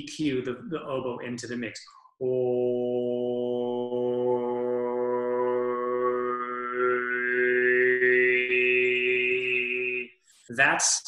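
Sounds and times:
man singing a long vowel: 0:02.2 - 0:10.1.

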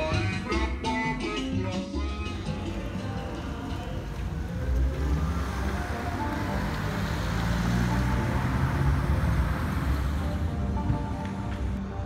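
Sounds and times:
background music: 0:00.0 - 0:12.0
road traffic: 0:00.0 - 0:12.0
vehicle rushing past: 0:02.3 - 0:11.8.

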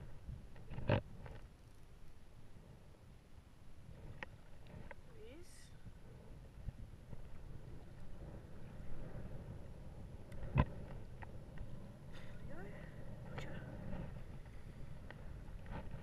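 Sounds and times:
wind rumble on microphone: 0:00.0 - 0:01.5, 0:02.4 - 0:16.0.

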